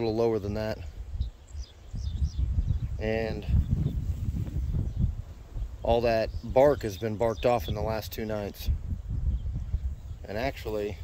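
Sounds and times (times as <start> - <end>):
wind buffeting microphone: 0.0 - 11.0
man's voice: 3.0 - 3.6, 5.8 - 8.8, 10.2 - 11.0.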